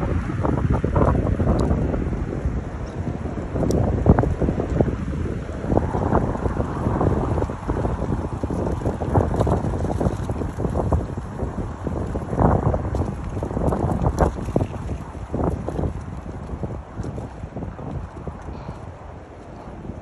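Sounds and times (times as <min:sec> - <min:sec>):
gusty wind buffeting microphone: 0:00.0 - 0:20.0.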